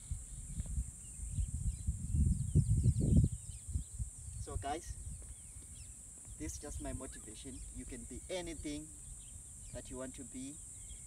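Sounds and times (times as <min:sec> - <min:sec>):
wind buffeting microphone: 0:00.0 - 0:09.8
faint bird chirps: 0:00.0 - 0:11.0
high insect buzz: 0:00.0 - 0:11.0.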